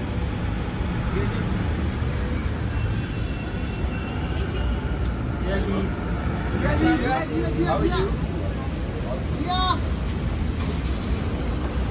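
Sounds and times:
street traffic rumble: 0.0 - 11.9.

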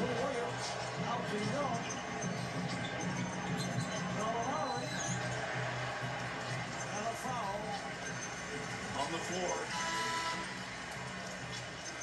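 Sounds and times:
music over loudspeakers: 0.0 - 10.9
crowd noise: 0.0 - 12.0.

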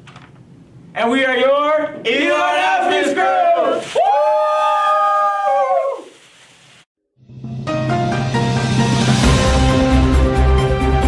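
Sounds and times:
teenager howling high ooo: 4.0 - 6.1.

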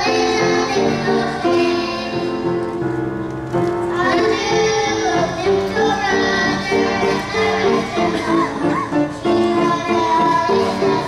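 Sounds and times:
children singing: 0.0 - 2.6, 3.9 - 11.0.

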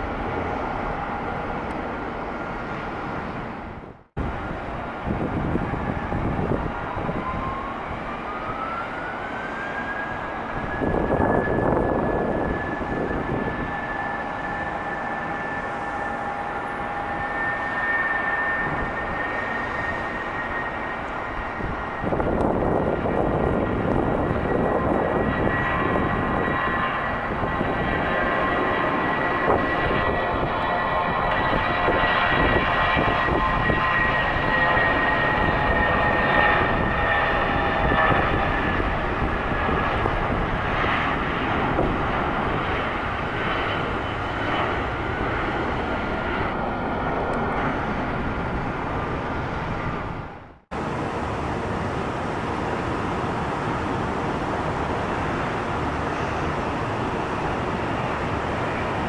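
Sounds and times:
jet engine whine and roar: 0.0 - 59.0.

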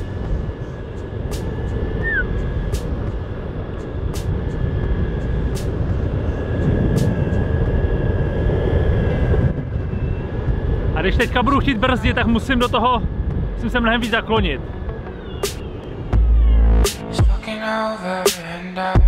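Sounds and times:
wind rumble on microphone: 0.0 - 17.4.

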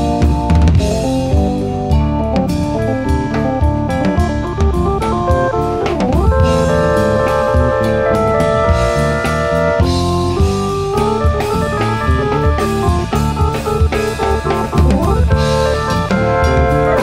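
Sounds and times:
drum kit: 0.0 - 17.0
electric guitar: 0.0 - 17.0
held keyboard chords: 0.0 - 17.0.

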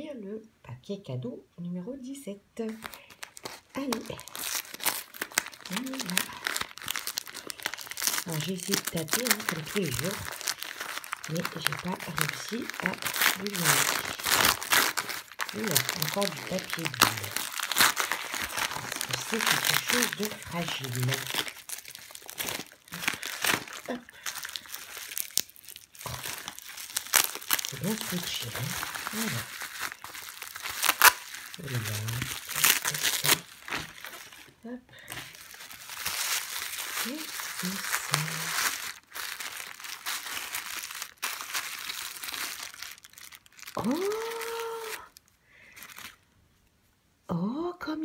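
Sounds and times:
wrapping paper crinkling and tearing: 2.7 - 46.3.

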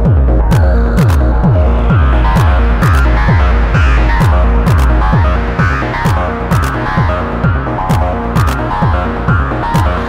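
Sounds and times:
repeating synth pattern: 0.0 - 10.0
techno kick drum: 0.0 - 10.0
hi-hat ticks: 0.4 - 9.2.

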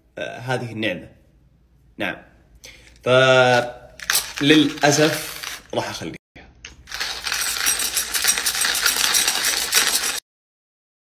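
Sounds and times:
hand-crank coffee grinder crunching: 4.0 - 5.7, 6.7 - 10.2.

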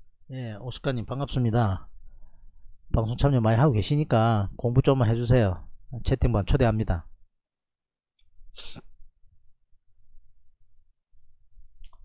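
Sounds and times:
man sniffing through nose: 8.5 - 9.0.

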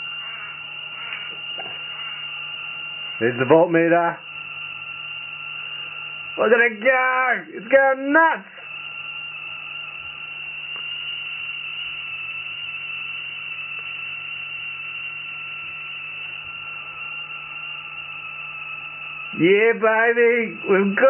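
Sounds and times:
high-pitched electrical whine: 0.0 - 21.0
low hum: 0.0 - 21.0.

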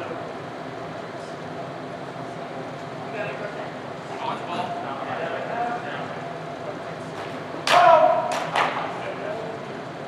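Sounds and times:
murmur of voices: 2.2 - 9.9.

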